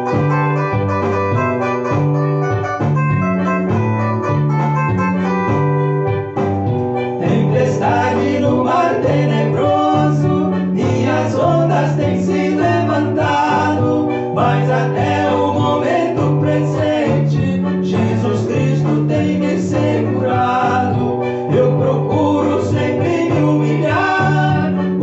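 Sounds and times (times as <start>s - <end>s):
electronic keyboard with bass line: 0.0s - 25.0s
man singing: 7.2s - 25.0s.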